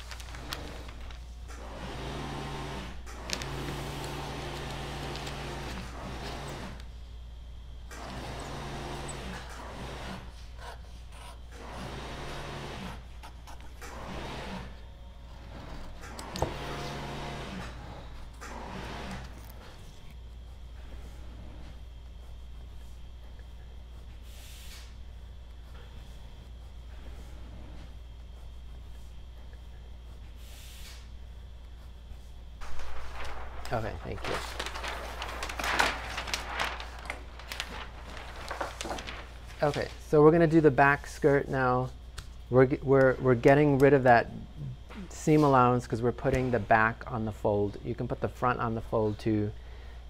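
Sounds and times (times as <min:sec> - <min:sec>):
paper rustling: 0:00.0 - 0:01.8, 0:02.8 - 0:06.9, 0:32.6 - 0:40.2
steady low hum: 0:00.0 - 0:50.0.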